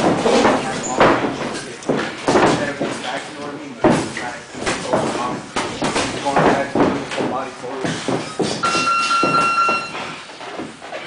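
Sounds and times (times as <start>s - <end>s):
footwork on ring canvas: 0.0s - 11.0s
high electronic beep: 8.6s - 10.0s.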